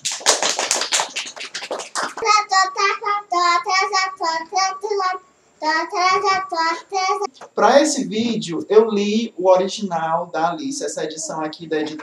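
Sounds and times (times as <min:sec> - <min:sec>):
hands clapping: 0:00.0 - 0:02.4.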